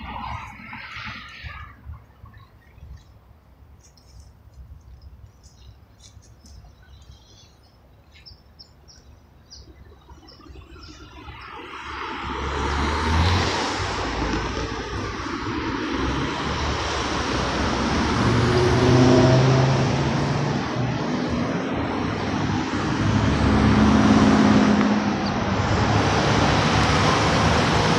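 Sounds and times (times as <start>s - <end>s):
cars passing close by: 0.0s - 2.3s, 9.6s - 27.9s.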